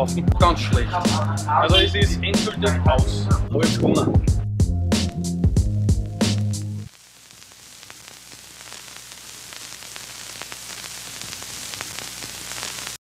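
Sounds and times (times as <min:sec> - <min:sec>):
static hiss: 0:05.0 - 0:13.0
faint scattered crackles: 0:06.0 - 0:13.0.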